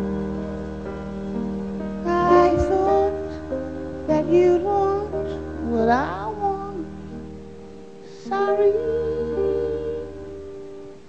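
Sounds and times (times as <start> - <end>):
soft sustained accompaniment: 0.0 - 11.0
woman singing jazz: 2.0 - 7.0, 8.1 - 10.9.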